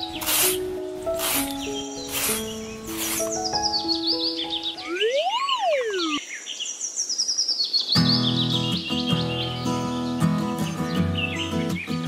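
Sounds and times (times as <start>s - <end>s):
background music: 0.0s - 6.2s
bird chirps: 1.4s - 12.0s.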